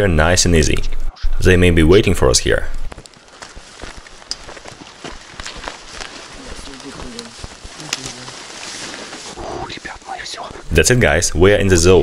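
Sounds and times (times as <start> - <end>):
footsteps on sandy track: 2.8 - 9.8
rustle of clothes and backpacks: 2.8 - 10.7.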